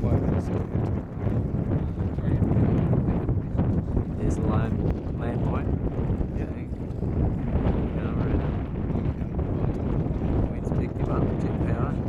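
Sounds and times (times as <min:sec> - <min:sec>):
steady low rumble: 0:00.0 - 0:12.0
wind buffeting microphone: 0:00.0 - 0:12.0.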